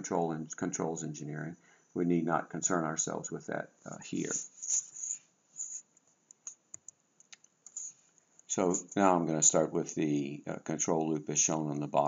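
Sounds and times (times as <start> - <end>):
low room noise: 0.0 - 12.0
faint sharp clicks: 5.7 - 8.8.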